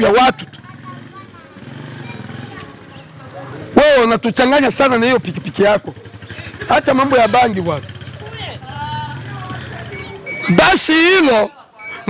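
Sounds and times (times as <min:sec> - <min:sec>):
small motorcycle engine idling: 0:00.2 - 0:10.6.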